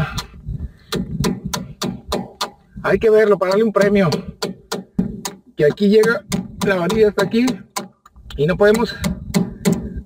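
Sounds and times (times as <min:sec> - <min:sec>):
hammer striking chisel: 0:00.9 - 0:02.6, 0:03.5 - 0:10.0.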